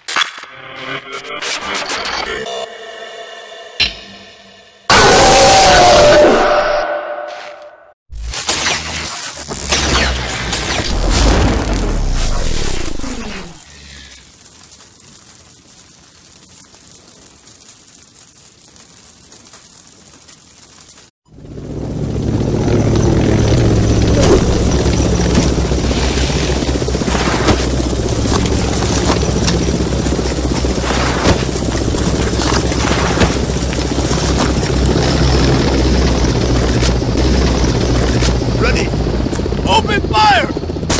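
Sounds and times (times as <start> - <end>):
loud burst with falling swoops: 8.4 - 13.7
steady low rumble: 21.3 - 40.9.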